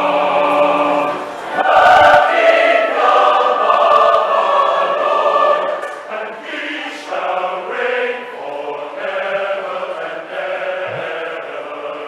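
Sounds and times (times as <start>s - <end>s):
large choir singing: 0.0s - 12.0s.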